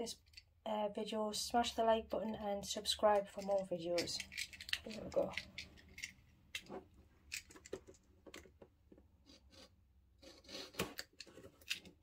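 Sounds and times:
hand scraping cardboard box: 9.2s - 11.6s.

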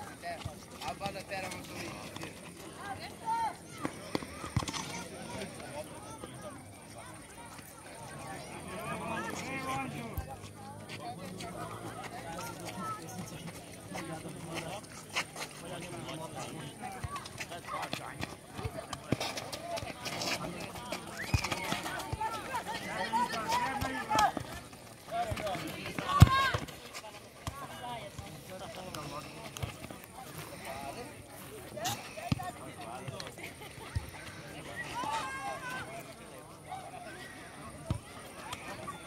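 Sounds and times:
ball kicks: 25.2s - 26.8s.

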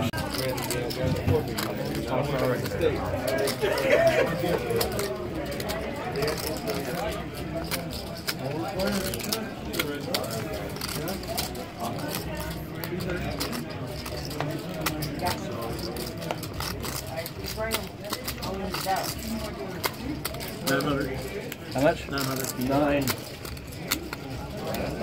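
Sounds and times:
players talking: 0.0s - 25.0s
poker chips clicking: 0.1s - 25.0s.

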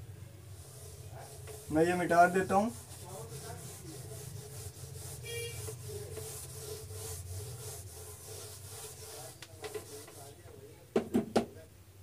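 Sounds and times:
duster rubbing on whiteboard: 0.5s - 10.4s.

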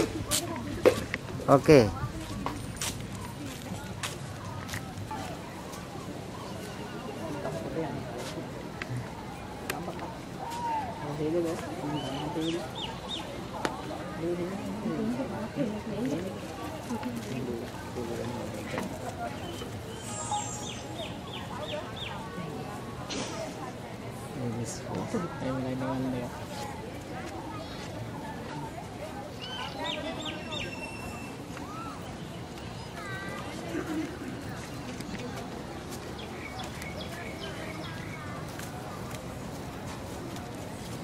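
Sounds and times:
murmur of voices: 0.0s - 41.0s
bird chirping: 19.4s - 22.1s
short high-pitched call: 19.9s - 20.9s.

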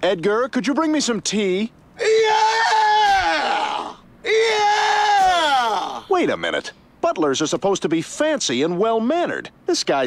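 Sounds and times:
cartoon man screaming: 2.0s - 6.1s.

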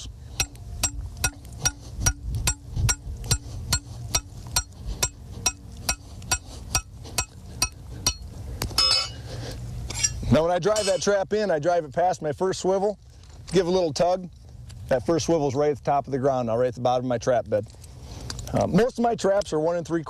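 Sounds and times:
hammer striking metal stake: 0.0s - 9.2s, 9.9s - 11.1s
metallic jingle: 0.4s - 9.2s, 9.9s - 11.1s.

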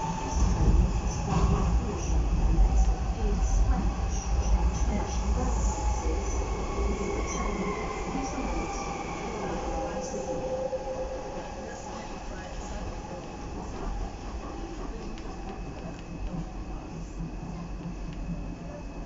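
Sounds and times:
train wheels rumbling on track: 0.0s - 19.0s.

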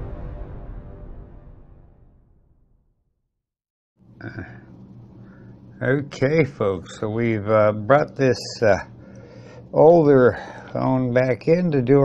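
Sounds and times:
steady low hum: 4.0s - 12.0s.

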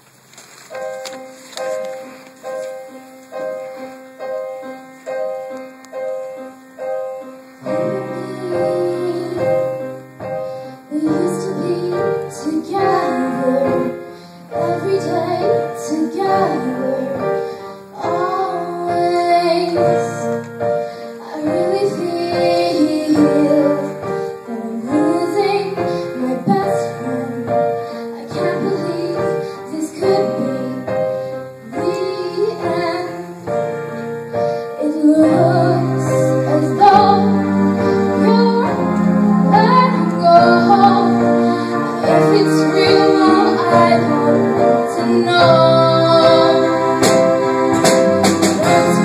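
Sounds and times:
acoustic guitar: 0.0s - 49.0s
keyboard: 0.0s - 49.0s
girl singing into microphone: 7.7s - 10.1s, 10.8s - 33.7s, 34.6s - 47.2s.

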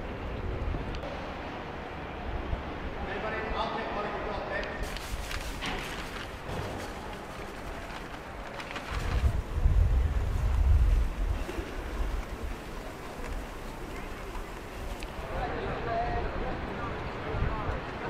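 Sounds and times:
wind buffeting microphone: 4.8s - 15.2s.

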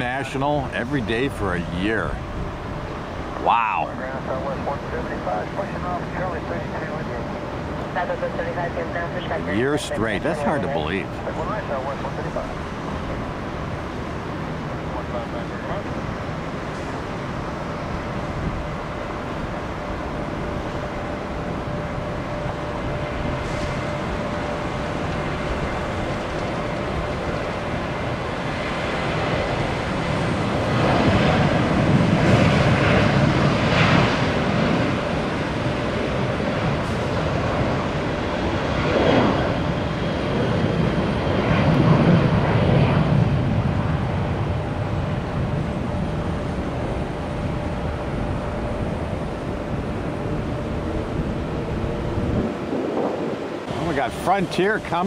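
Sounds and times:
distant jet engines rumbling: 0.0s - 55.0s.

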